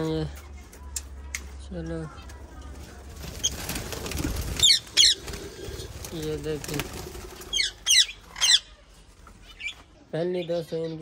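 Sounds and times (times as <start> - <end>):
young birds peeping: 2.0 - 11.0.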